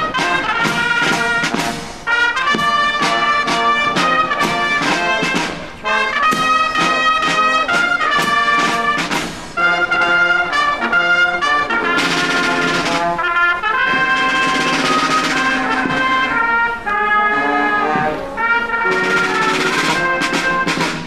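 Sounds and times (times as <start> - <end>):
brass band playing: 0.0 - 21.0.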